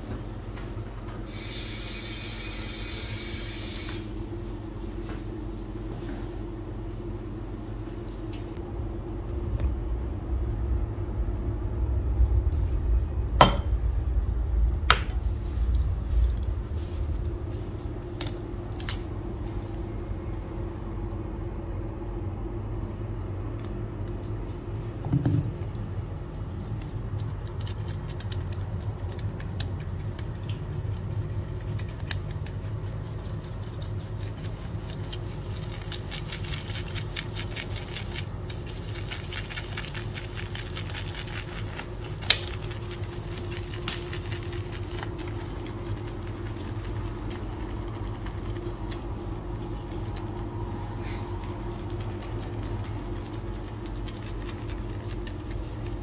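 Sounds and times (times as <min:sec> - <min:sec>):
low hum: 0:00.0 - 0:56.0
brush whipping foam in metal bowl: 0:30.6 - 0:48.9.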